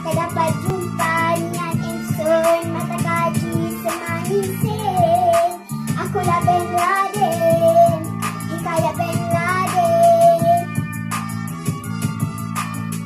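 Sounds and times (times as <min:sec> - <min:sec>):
child singing into microphone: 0:00.0 - 0:10.8
backing music with steady beat: 0:00.0 - 0:13.0.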